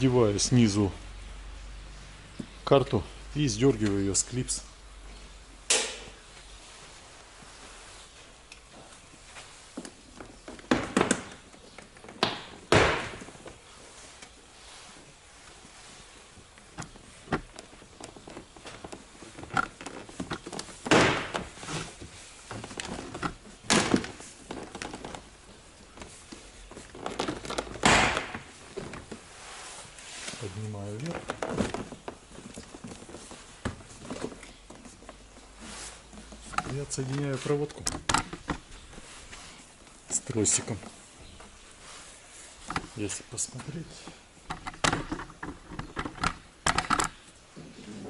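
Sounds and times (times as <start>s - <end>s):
plastic knocks: 18.3s - 21.6s.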